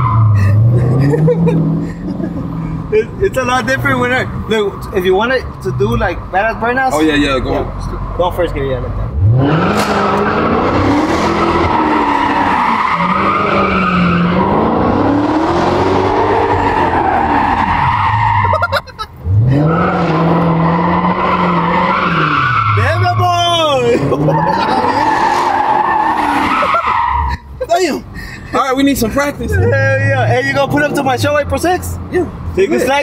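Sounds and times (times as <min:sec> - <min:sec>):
car engine revving: 0:00.0 - 0:27.4
tyres spinning and squealing: 0:09.2 - 0:28.2.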